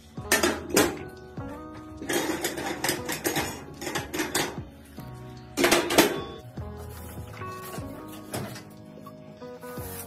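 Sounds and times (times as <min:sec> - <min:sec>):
metal stove grates clanking: 0:00.2 - 0:01.2, 0:02.0 - 0:04.7.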